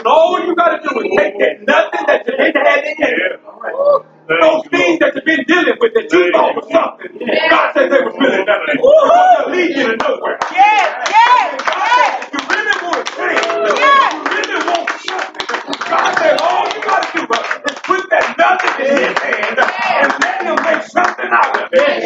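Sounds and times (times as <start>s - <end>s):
voices calling out: 0.0s - 22.0s
congregation clapping: 10.0s - 22.0s.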